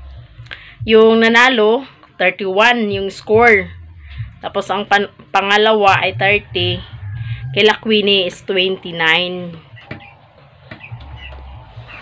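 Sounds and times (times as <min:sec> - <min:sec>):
low hum: 0:02.9 - 0:12.0
chickens calling: 0:05.9 - 0:12.0.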